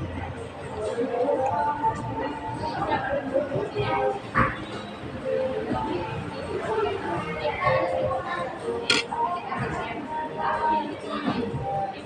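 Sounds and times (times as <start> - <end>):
music: 0.0 - 12.0
sharp click: 8.9 - 9.1.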